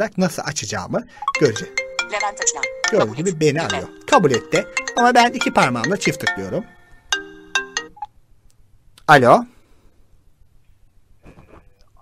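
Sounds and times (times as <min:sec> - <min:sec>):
phone ringtone: 0:01.1 - 0:08.1.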